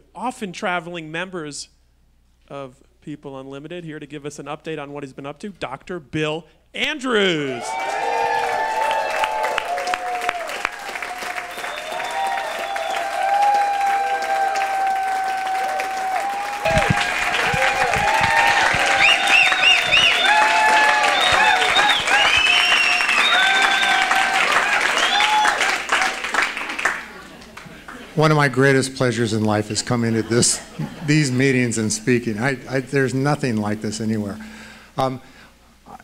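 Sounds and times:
audience applauding: 7.5s - 28.0s.

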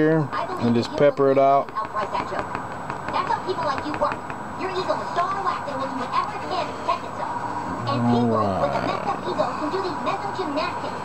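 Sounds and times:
muffled television speech: 0.0s - 11.0s.

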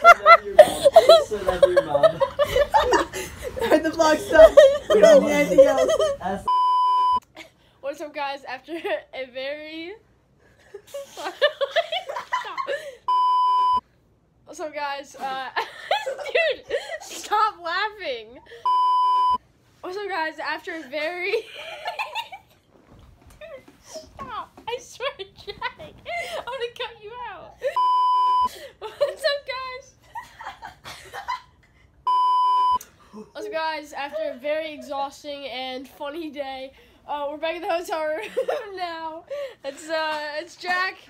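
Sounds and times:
young person laughing and talking: 0.0s - 6.5s, 15.0s - 18.5s, 23.4s - 27.8s, 28.6s - 31.6s, 37.8s - 41.0s
censor bleep: 6.5s - 7.2s, 13.1s - 13.8s, 18.7s - 19.4s, 27.8s - 28.5s, 32.1s - 32.8s.

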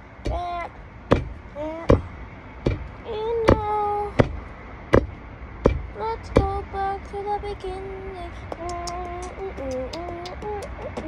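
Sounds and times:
sharp knocks: 1.1s - 2.9s, 3.5s - 6.5s
child's song singing: 3.1s - 4.2s, 6.0s - 11.0s.

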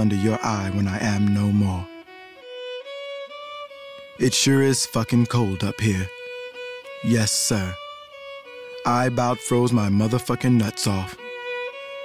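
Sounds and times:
solo fiddle slow melody: 0.0s - 12.0s.

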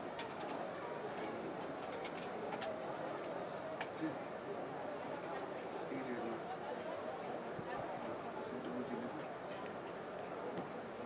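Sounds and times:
low murmur of shop: 0.0s - 11.0s.

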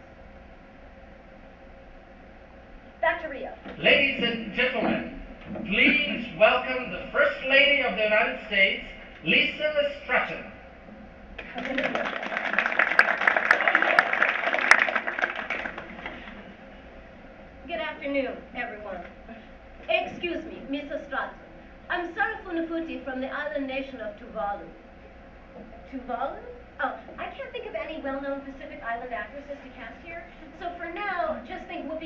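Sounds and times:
audience applauding: 11.4s - 16.4s.

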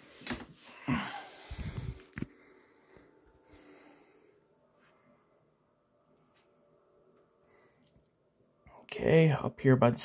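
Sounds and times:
faint soft sounds: 0.0s - 8.9s
man speaking: 8.7s - 10.0s.

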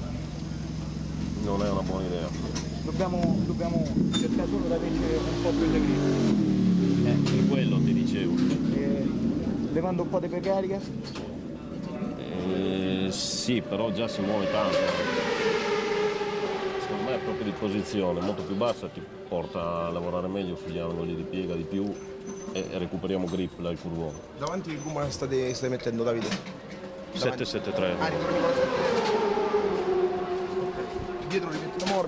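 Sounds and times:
motorcycle engine at high revs: 0.0s - 9.8s, 27.7s - 32.0s
racing motorcycle engine passing: 0.0s - 32.0s.

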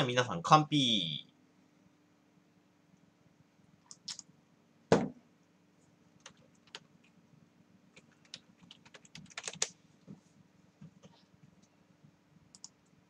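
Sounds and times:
typing on computer keyboard: 6.2s - 6.9s, 8.0s - 9.8s, 12.5s - 12.8s.

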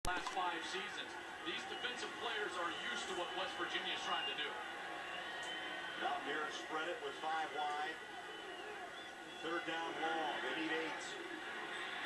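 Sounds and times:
sports commentator talking: 0.0s - 4.9s, 5.8s - 12.0s.

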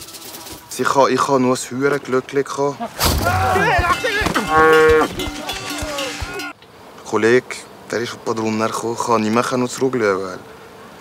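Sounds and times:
cow mooing loudly: 3.4s - 6.3s.

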